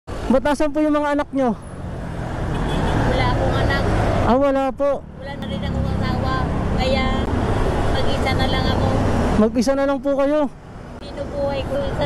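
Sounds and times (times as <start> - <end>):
vehicle passing by: 0.1 - 12.0.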